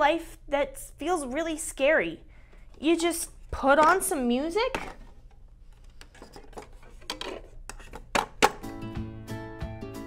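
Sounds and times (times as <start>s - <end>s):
plastic clicks and knocks: 6.0s - 8.6s
loud lid snaps: 8.0s - 8.7s
music playing: 8.6s - 10.0s.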